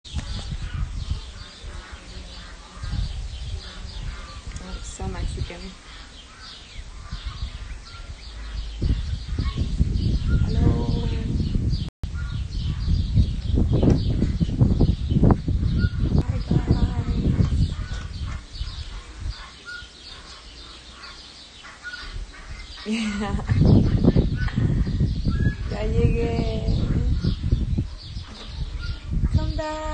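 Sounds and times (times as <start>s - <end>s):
birds chirping: 0.0s - 29.9s.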